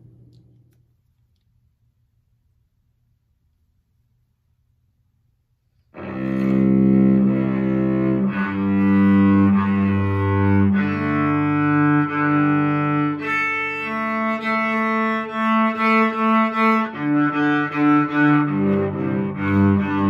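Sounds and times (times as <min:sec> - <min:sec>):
cello bowed notes: 0:06.0 - 0:20.0.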